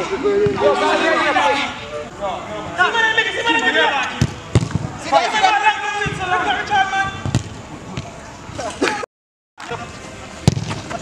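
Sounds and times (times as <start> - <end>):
players shouting: 0.0 - 7.3
football kicked on turf: 10.4 - 11.0.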